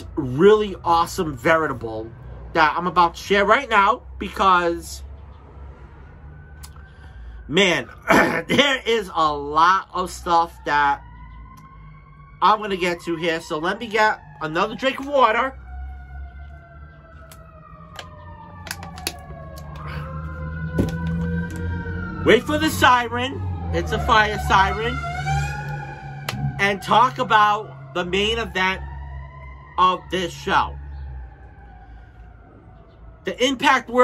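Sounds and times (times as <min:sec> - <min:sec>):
fire siren wailing: 0:00.0 - 0:34.0.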